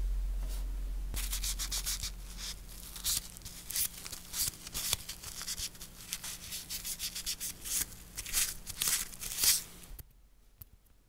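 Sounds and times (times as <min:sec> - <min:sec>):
cotton pad rubbing nails: 0:01.2 - 0:09.7.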